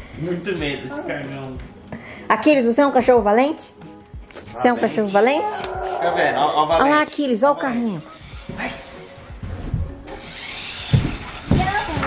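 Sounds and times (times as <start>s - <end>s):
toy truck motor whirring: 10.1s - 12.0s.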